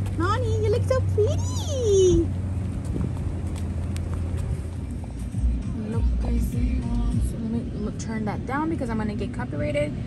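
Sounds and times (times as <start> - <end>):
wind rumble on microphone: 1.1 - 5.6.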